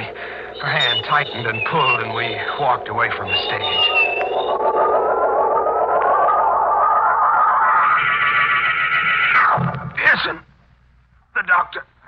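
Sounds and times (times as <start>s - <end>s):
dramatic organ chord: 0.0s - 7.7s.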